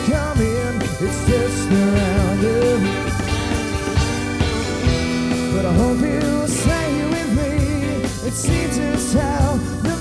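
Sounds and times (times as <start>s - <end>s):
electric guitars holding notes: 0.0s - 10.0s
keyboard: 0.0s - 10.0s
drum hits: 1.3s - 7.5s.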